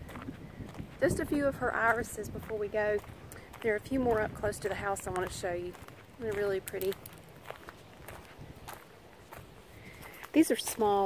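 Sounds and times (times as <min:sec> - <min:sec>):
footsteps on gravel: 0:00.0 - 0:11.0
wind rumble on microphone: 0:00.0 - 0:11.0.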